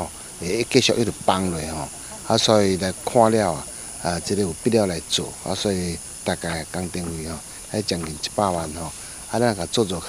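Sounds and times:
faint high-pitched hiss: 0.0 - 10.0
man speaking: 0.0 - 10.0.

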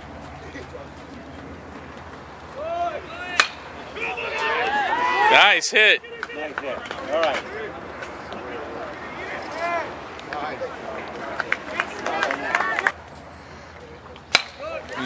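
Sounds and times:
people calling out: 2.5 - 6.6
bat striking ball: 3.3 - 3.8, 14.3 - 14.7.

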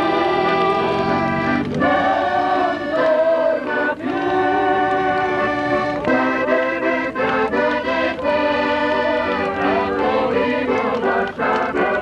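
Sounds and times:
accordion: 0.0 - 12.0
group singing: 0.0 - 12.0.

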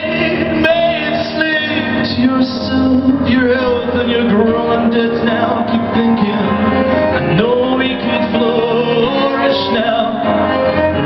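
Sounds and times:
instrumental accompaniment: 0.0 - 11.0
man singing long wavering notes: 4.3 - 10.4.

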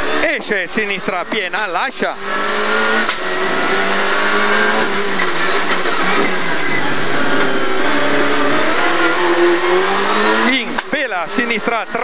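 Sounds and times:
car engine under load: 0.0 - 12.0.

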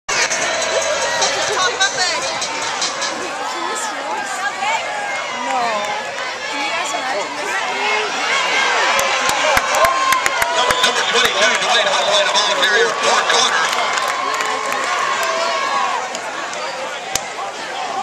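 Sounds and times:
stadium crowd shouting and cheering: 0.1 - 18.0.

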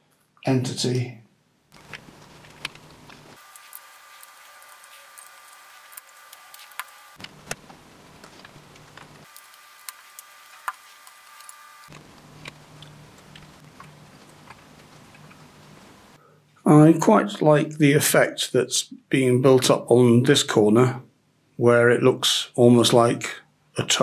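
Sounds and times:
faint steady hum: 0.0 - 24.0.

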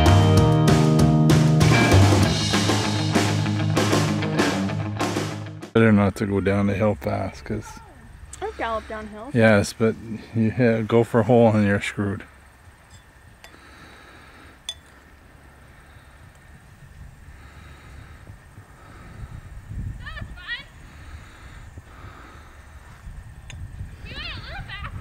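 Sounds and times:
wind buffeting microphone: 15.2 - 25.0.

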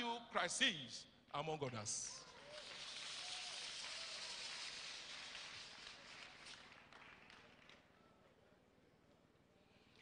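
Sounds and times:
audience applauding: 2.2 - 7.9.

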